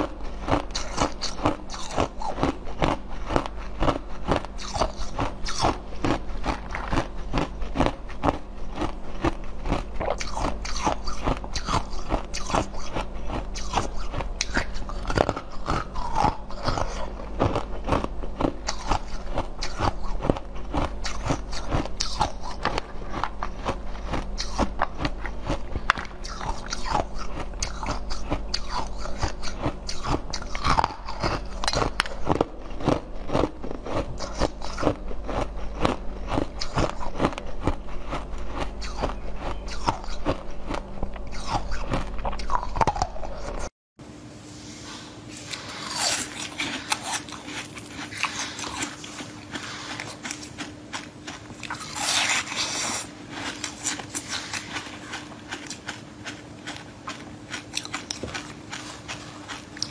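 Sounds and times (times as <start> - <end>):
crunching and chewing frozen jelly: 0.0 - 43.7, 45.3 - 59.9.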